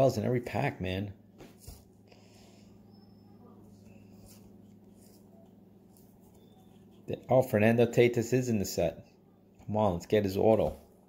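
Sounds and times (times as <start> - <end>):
steady low hum: 0.0 - 11.0
cardboard cards sliding and flicking: 1.4 - 1.9.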